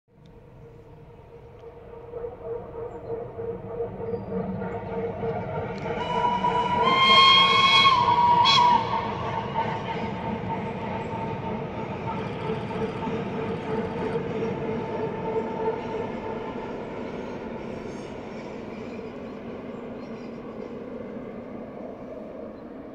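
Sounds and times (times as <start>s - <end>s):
train wheels rumbling on rails: 0.2s - 22.9s
locomotive whistle: 0.6s - 12.8s.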